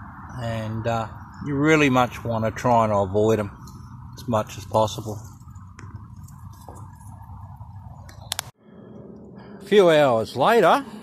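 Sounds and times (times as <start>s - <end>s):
outdoor background noise: 0.0s - 11.0s
sharp clicks: 8.0s - 9.3s.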